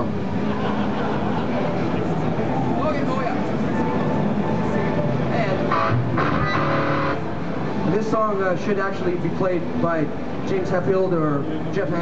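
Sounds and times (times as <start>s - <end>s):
crowd chatter: 0.0s - 10.3s.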